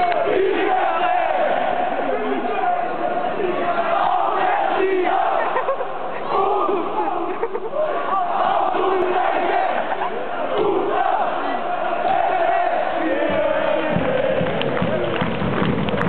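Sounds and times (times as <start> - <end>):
crowd shouting and chanting: 0.0 - 15.2.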